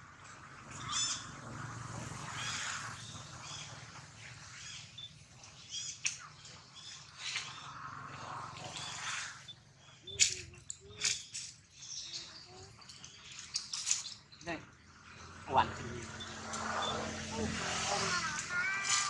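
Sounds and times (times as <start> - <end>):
monkeys squeaking and chirping: 8.8 - 14.4.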